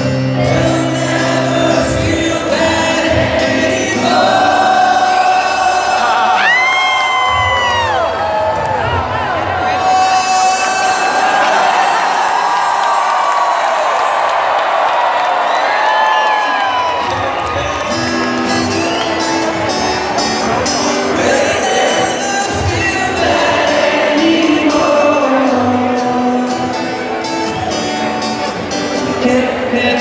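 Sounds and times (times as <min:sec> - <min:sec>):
acoustic guitar playing: 0:00.0 - 0:06.6, 0:17.7 - 0:30.0
crowd cheering and whooping: 0:04.2 - 0:24.1, 0:26.6 - 0:28.4.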